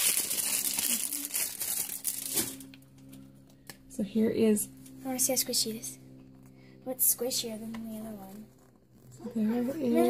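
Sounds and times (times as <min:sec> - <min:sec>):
plastic wrapper crinkling: 0:00.0 - 0:02.8.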